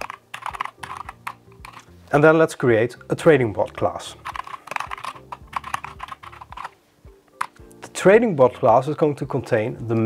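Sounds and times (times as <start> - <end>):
typing on keyboard: 0.0 - 1.9, 3.6 - 6.8.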